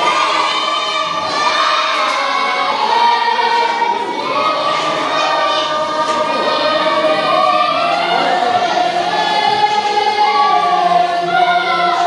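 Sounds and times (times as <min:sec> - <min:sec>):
choir singing long held notes: 0:00.0 - 0:12.0.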